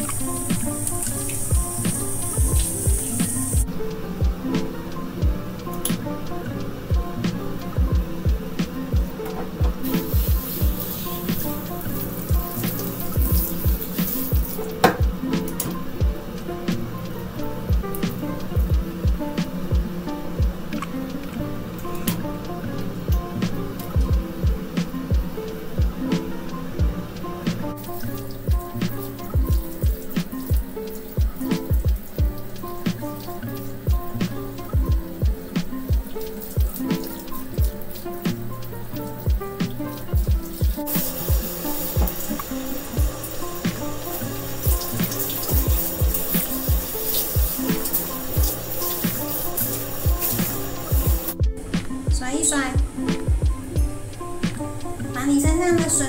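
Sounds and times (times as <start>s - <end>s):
background music with beat: 0.0s - 56.0s
shower spray hissing: 0.0s - 56.0s.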